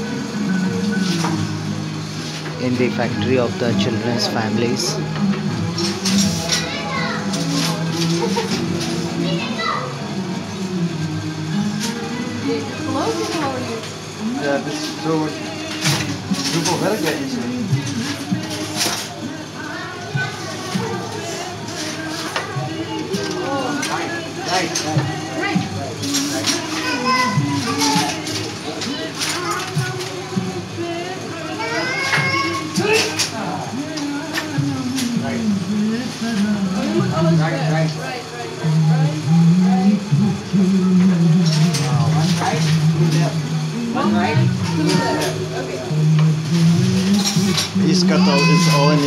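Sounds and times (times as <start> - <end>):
background music with held notes: 0.0 - 49.0
children chattering: 5.8 - 34.3, 41.6 - 46.0, 47.8 - 49.0.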